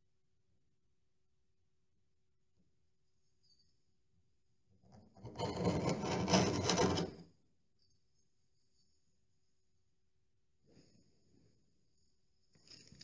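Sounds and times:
scraping paint off wood: 5.2 - 7.2.

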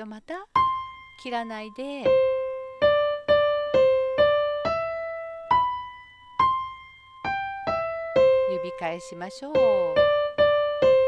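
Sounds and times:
digital piano slow melody: 0.6 - 11.0.

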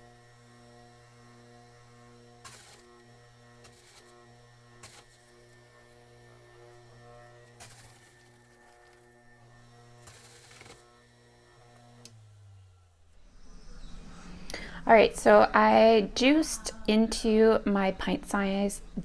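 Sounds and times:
juicer grinding tomatoes: 0.0 - 14.8
juicer motor humming: 0.0 - 16.5.

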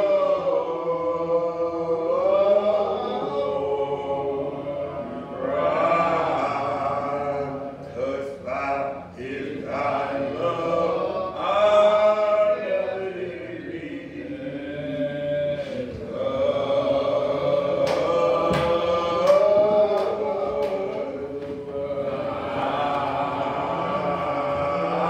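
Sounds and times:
man chanting sermon: 0.0 - 25.0.

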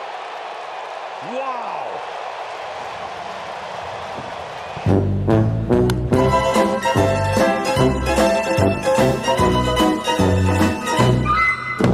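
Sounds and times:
crowd cheering: 0.0 - 11.9.

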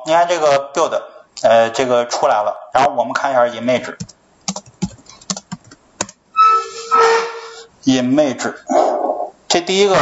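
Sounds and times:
steady tone with hiss: 6.2 - 10.0.

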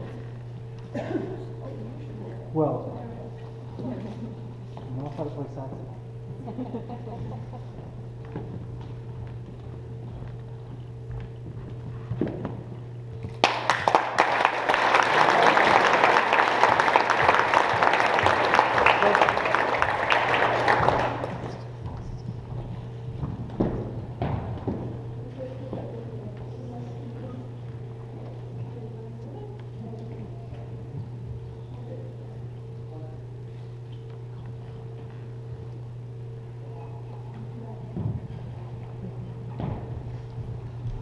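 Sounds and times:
audience applauding: 13.3 - 21.7.

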